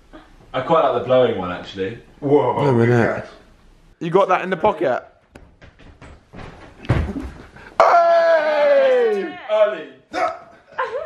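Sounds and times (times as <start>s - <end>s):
man exclaiming whoa: 7.8s - 10.4s.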